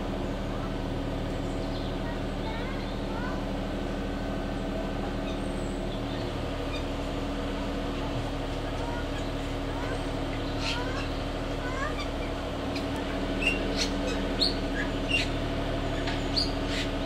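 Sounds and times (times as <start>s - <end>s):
birds chirping: 0.0s - 17.0s
low mechanical hum: 0.0s - 17.0s.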